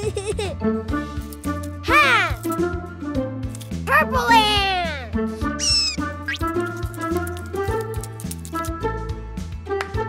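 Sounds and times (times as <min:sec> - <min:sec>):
bouncy cartoon music: 0:00.0 - 0:10.0
falling squeal: 0:05.6 - 0:06.4
quick rising chirp: 0:05.6 - 0:06.5.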